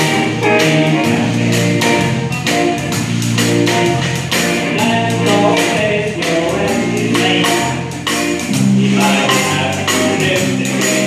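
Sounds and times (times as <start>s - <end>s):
person singing: 0.0s - 2.4s, 4.6s - 8.0s, 8.6s - 11.0s
live band playing pop song: 0.0s - 11.0s.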